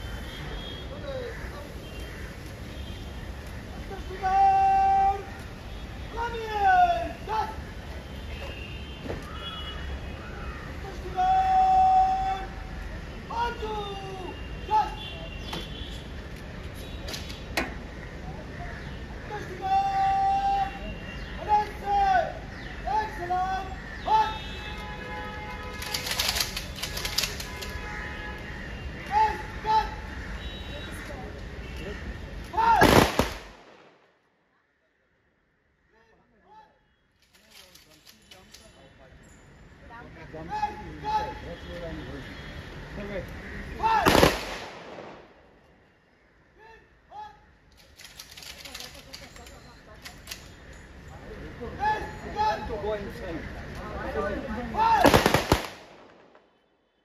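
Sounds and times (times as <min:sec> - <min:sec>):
person shouting command: 0:04.2 - 0:05.3, 0:19.3 - 0:20.8, 0:32.5 - 0:32.8
rifle shots volley: 0:32.8 - 0:34.0, 0:44.0 - 0:45.3, 0:55.0 - 0:56.4
rifle volley: 0:55.0 - 0:56.4.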